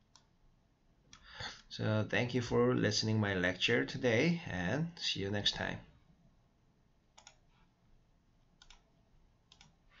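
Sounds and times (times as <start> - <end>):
computer mouse clicks: 0.0 - 0.4, 7.1 - 7.7, 8.5 - 9.8.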